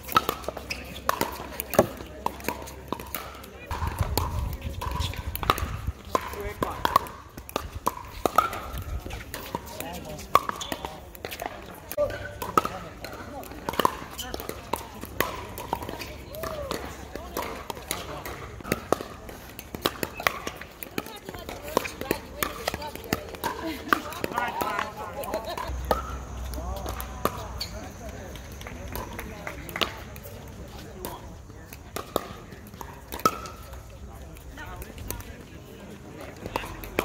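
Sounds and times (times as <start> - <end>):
paddles hitting plastic balls: 0.0 - 37.0
voices of players: 0.1 - 37.0.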